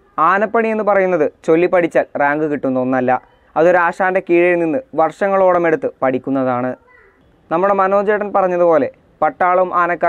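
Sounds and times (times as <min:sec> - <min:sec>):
young man talking: 0:00.1 - 0:06.8, 0:07.4 - 0:10.0.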